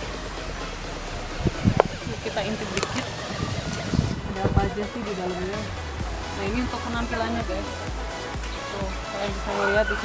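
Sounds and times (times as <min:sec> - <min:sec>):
short low thumps: 0:00.8 - 0:09.0.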